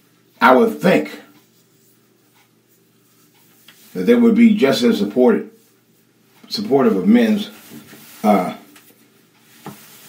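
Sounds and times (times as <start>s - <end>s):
man speaking: 0.4s - 1.4s, 3.9s - 5.6s, 6.4s - 7.6s, 8.2s - 8.7s.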